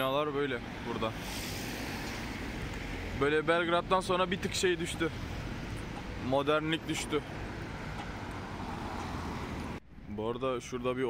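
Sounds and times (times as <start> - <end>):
city street traffic hum: 0.0 - 11.0.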